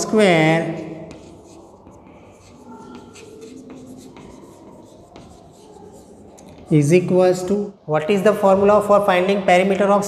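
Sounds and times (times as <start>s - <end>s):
person speaking: 0.0s - 10.0s
chalk scratching on chalkboard: 0.8s - 7.1s.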